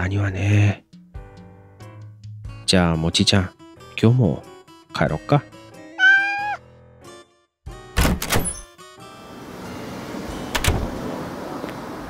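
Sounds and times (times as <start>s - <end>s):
door shutting and locking: 8.0s - 8.7s, 10.5s - 11.0s
outdoor ambience hiss: 9.0s - 12.0s.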